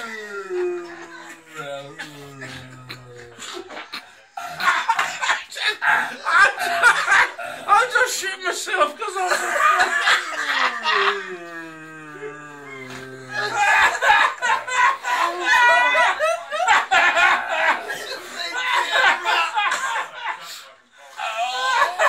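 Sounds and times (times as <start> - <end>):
loud laughter: 0.0 - 22.0.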